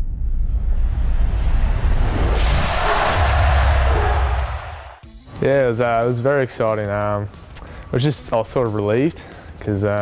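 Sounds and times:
deep bass rumble: 0.0 - 5.0
whoosh: 0.0 - 5.0.

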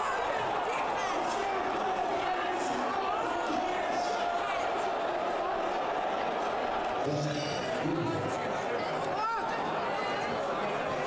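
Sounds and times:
crowd chatter indoors: 0.0 - 11.0.

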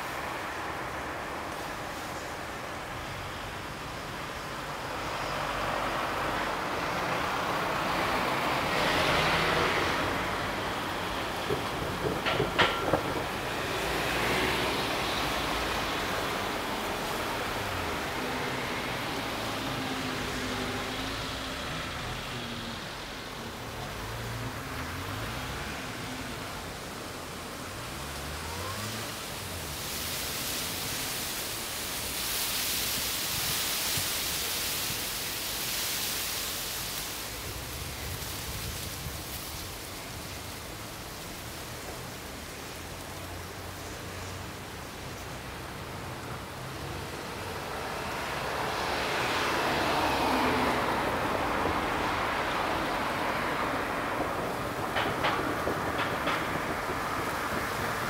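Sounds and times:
vehicle traffic rushing past: 0.0 - 58.0.

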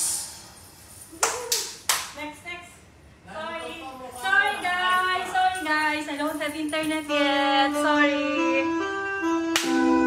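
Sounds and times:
sharp hand claps: 1.2 - 2.2, 9.5 - 9.8.

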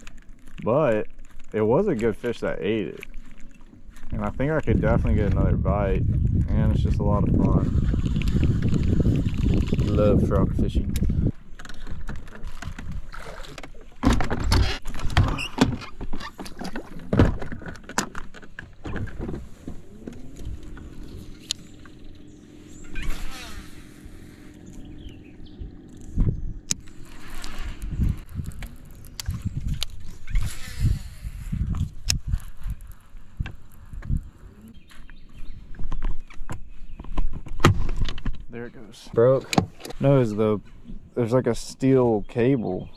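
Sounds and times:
electric boat motor humming: 18.6 - 32.1.

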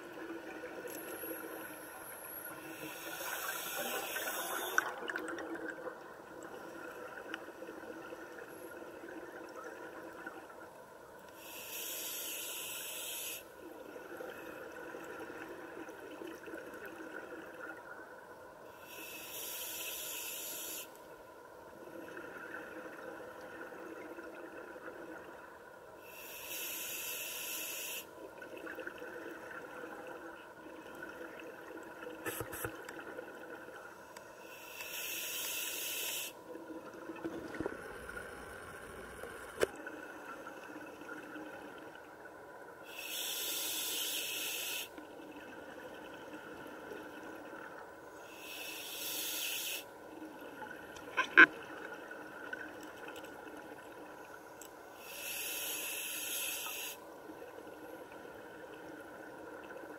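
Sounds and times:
underwater hiss: 1.0 - 5.0, 11.4 - 13.5, 18.8 - 21.0, 26.0 - 28.1, 33.9 - 36.4, 42.8 - 45.0, 48.0 - 49.9, 54.2 - 57.1.

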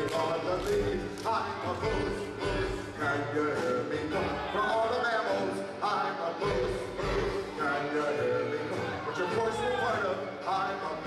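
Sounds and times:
group of voices singing: 0.0 - 11.0.

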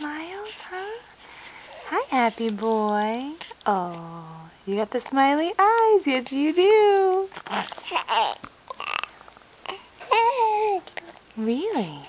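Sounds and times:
baby grunting: 7.3 - 11.1
baby cooing: 7.3 - 12.0.

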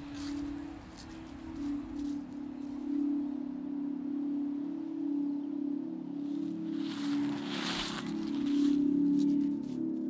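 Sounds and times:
low ringing drone: 0.0 - 10.0.

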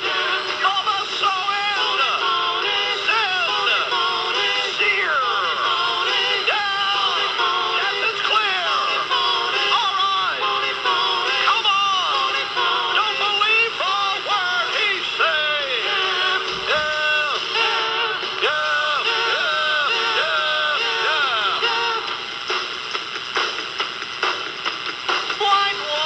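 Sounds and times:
man singing: 0.0 - 22.1, 25.4 - 26.0
musical backing: 0.0 - 26.0.

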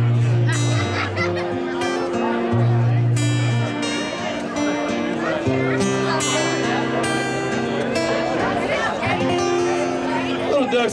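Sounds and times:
acoustic guitar playing: 0.0 - 10.9.

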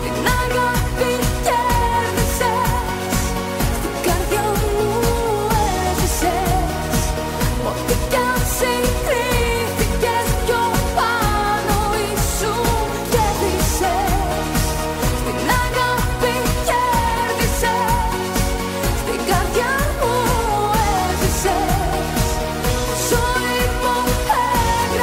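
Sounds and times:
pop band with dance beat: 0.0 - 25.0.

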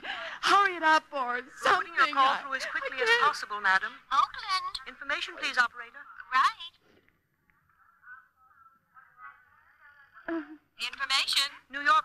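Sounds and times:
faint voice over telephone: 7.6 - 10.6.

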